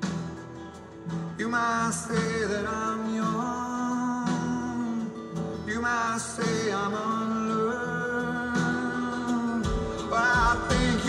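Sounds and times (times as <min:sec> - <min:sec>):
acoustic guitar: 0:00.0 - 0:11.0
man singing: 0:01.4 - 0:11.0.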